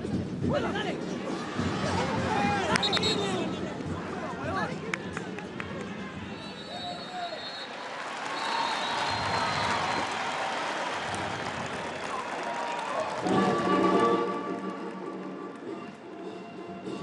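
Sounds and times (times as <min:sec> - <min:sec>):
referee's whistle blasts: 0:02.7 - 0:03.5, 0:06.3 - 0:10.0.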